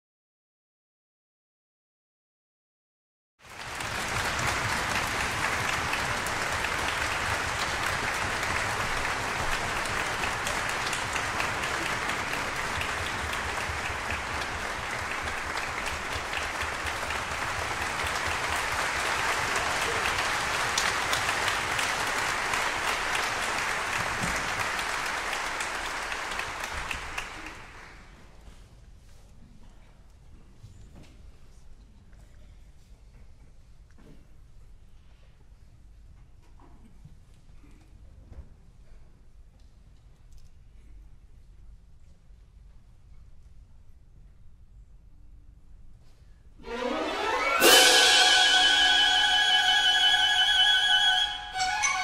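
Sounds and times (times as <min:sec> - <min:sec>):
audience applause: 0:03.4 - 0:28.2, 0:46.7 - 0:52.0.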